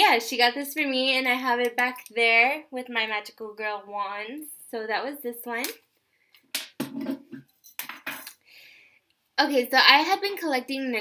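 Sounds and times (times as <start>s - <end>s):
objects clattering and rustling: 6.8s - 8.3s.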